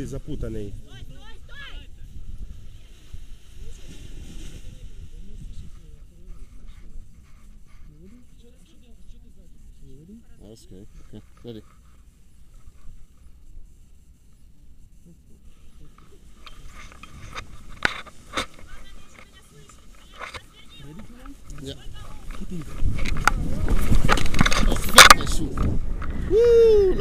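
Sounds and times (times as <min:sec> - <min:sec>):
wind rumbling on microphone: 0:00.0 - 0:11.3, 0:11.9 - 0:27.0.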